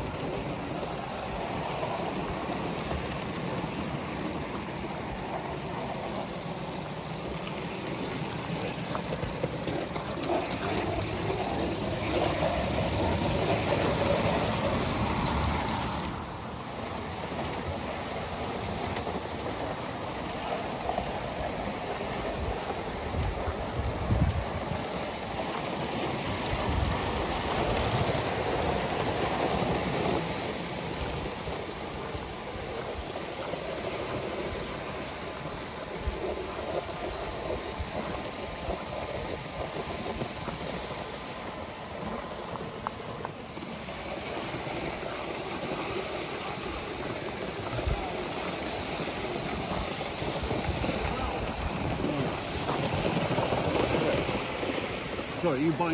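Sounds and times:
model trains running on track: 0:00.0 - 0:55.9.

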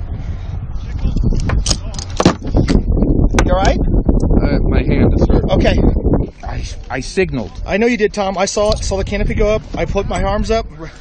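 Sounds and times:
steady low rumble: 0:00.0 - 0:11.0
sharp knocks and clatter: 0:01.4 - 0:02.8.

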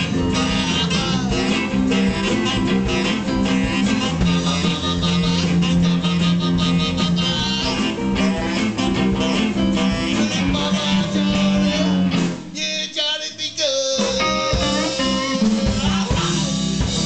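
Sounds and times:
electric guitars: 0:00.0 - 0:12.6, 0:14.0 - 0:17.0
drums: 0:00.0 - 0:17.0
person singing: 0:00.0 - 0:17.0.

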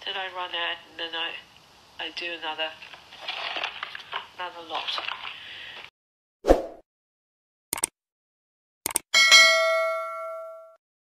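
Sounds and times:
notification bell ding: 0:09.2 - 0:10.8.

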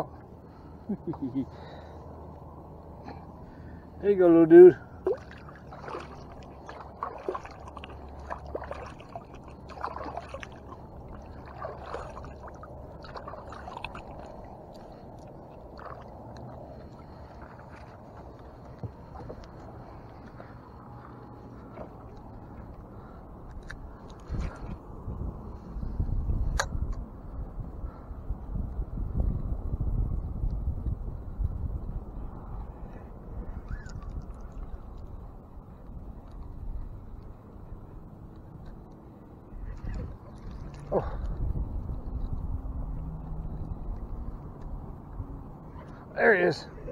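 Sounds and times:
water sloshing against boat: 0:00.0 - 0:26.7, 0:32.4 - 0:46.9
fish splashing into water: 0:05.0 - 0:19.2.

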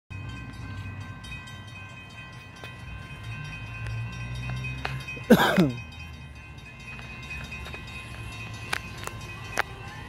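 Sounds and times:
freight train rumble: 0:00.1 - 0:10.0.

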